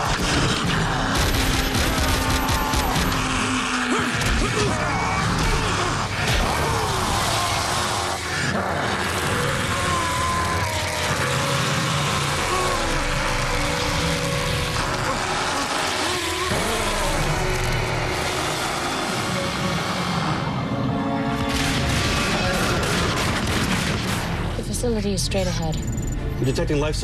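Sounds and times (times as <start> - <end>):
dramatic music: 0.0 - 27.0
rushing droning sound effect: 11.0 - 21.8.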